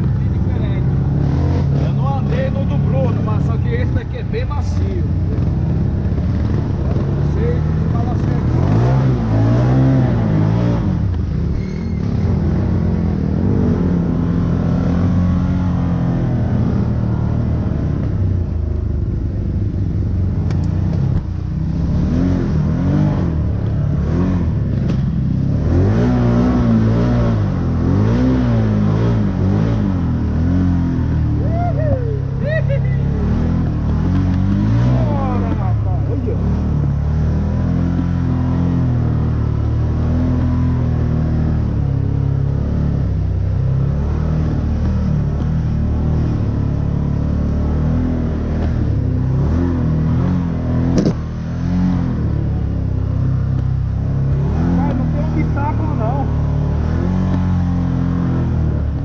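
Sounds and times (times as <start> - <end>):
off-road vehicle engine revving: 0.0 - 59.0.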